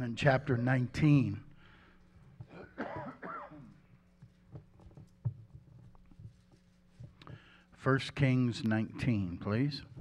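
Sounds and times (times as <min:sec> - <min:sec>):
person coughing: 0:02.5 - 0:03.8
rustling: 0:04.0 - 0:07.5.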